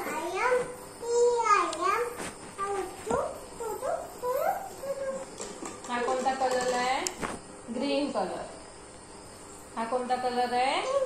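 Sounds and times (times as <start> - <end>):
toddler squealing and babbling: 1.1 - 5.2.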